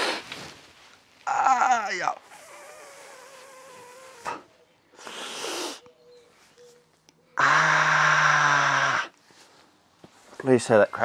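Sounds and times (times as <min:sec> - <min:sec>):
person straining hum: 0:01.3 - 0:05.8, 0:07.4 - 0:09.2.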